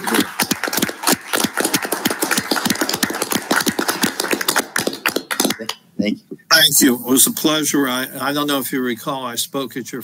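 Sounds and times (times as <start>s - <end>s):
small group applauding: 0.0s - 5.8s.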